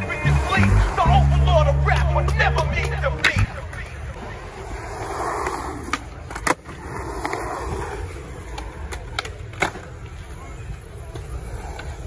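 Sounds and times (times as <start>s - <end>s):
skateboard wheels rolling on concrete: 0.0s - 12.0s
skateboard clacking on concrete: 1.9s - 12.0s.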